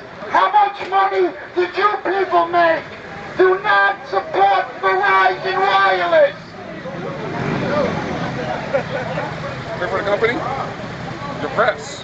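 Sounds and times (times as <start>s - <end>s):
man talking through megaphone: 0.0s - 6.5s
crowd chatter: 0.0s - 12.0s
traffic: 0.0s - 12.0s.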